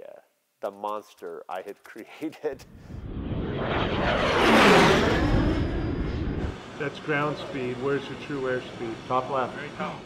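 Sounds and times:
turboprop aircraft passing low: 2.7s - 9.7s.

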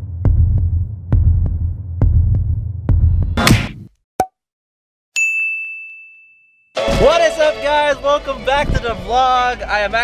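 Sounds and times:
bell ding: 5.2s - 6.8s.

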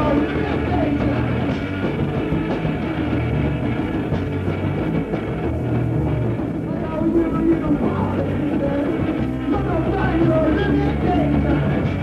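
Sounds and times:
bass line: 0.0s - 12.0s
drum kit: 0.0s - 12.0s
electric guitar: 0.0s - 12.0s.

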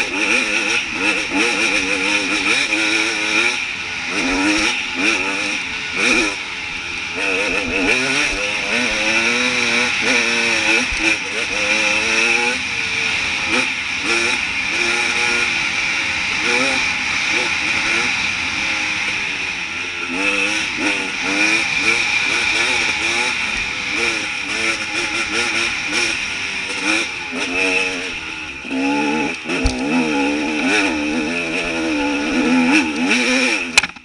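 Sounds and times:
dirt bike engine revving: 0.0s - 34.0s.

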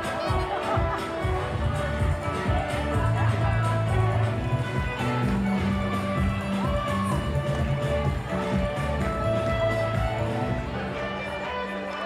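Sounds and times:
music with sustained bass notes: 0.0s - 12.0s.

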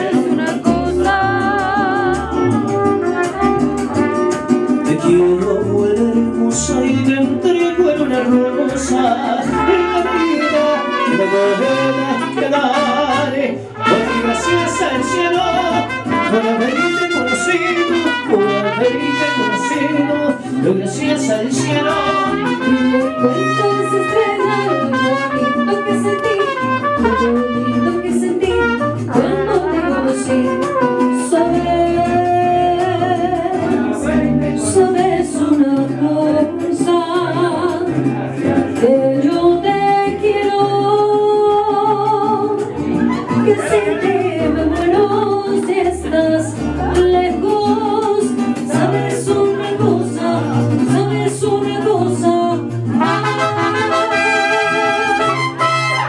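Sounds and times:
mariachi band playing: 0.0s - 56.0s
person singing: 0.0s - 56.0s.

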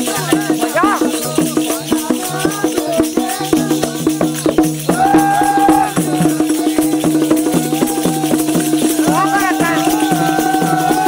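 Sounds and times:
hand drum with rattling jingles: 0.0s - 11.0s.

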